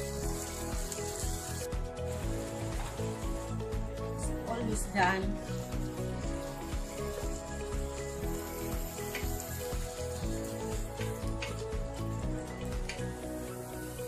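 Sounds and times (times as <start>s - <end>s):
background music: 0.0s - 14.0s.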